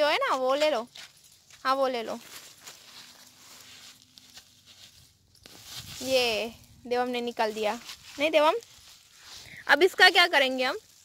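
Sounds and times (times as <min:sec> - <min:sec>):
leaves and stems rustling: 0:00.0 - 0:11.0.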